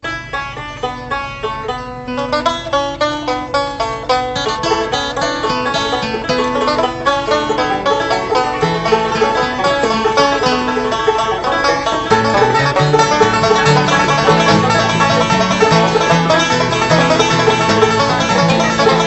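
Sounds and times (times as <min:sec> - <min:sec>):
banjo picking: 0:00.0 - 0:19.0.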